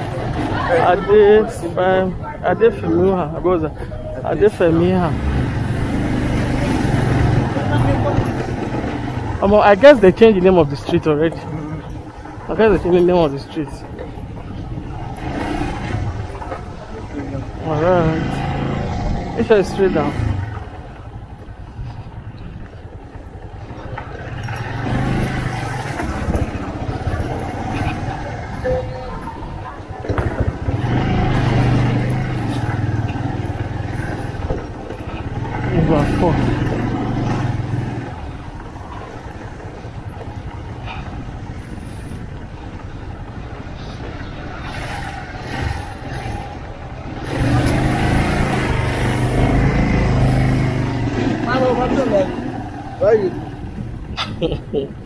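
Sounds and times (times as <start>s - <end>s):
motorcycle engine revving: 4.2s - 54.8s.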